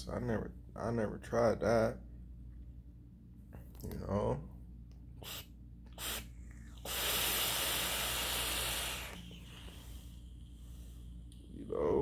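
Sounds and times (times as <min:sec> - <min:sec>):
e-cigarette drag hiss: 0:05.2 - 0:10.2.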